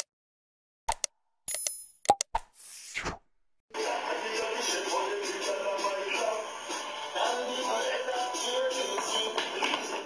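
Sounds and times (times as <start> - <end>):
pop-like clicks: 0.9 - 2.5.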